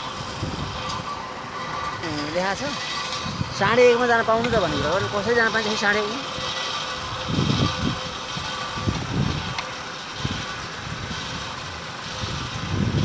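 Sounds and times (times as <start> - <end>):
wind gusts on microphone: 0.0 - 5.4, 6.2 - 13.0
crushing plant machinery drone: 0.0 - 13.0.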